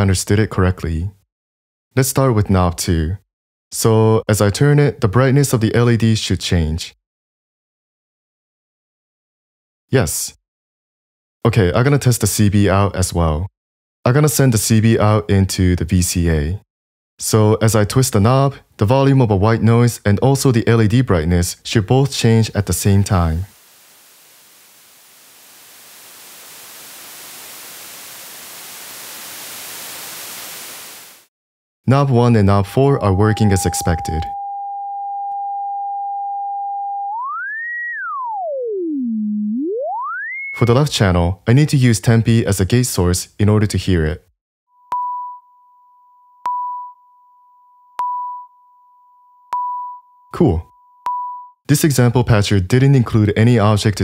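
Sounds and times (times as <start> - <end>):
synthesizer white noise: 23.5 - 31.3
high-pitched sine beeps: 32.2 - 40.7, 44.8 - 47.1, 48.0 - 51.6
faint steady tone: 32.3 - 36.1.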